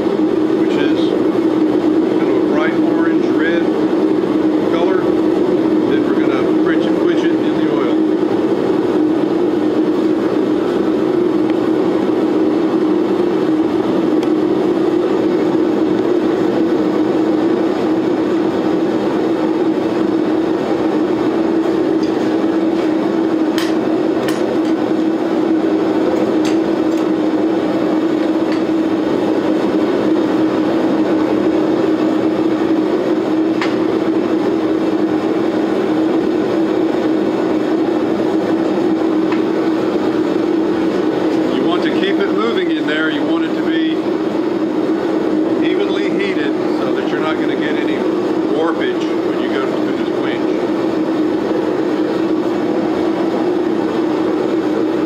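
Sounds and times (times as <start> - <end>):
gas forge burners roaring: 0.0 - 55.0.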